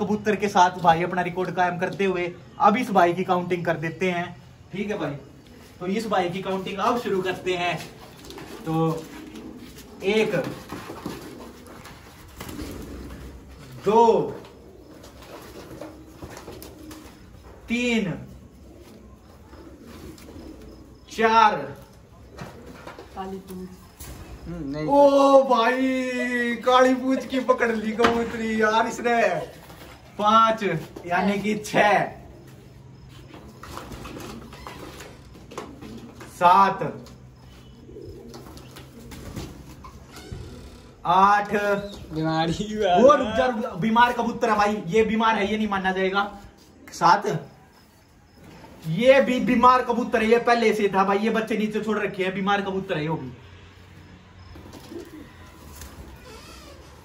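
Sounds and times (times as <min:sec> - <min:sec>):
pigeon being handled: 0:05.3 - 0:21.1, 0:25.7 - 0:40.8, 0:54.5 - 0:57.0.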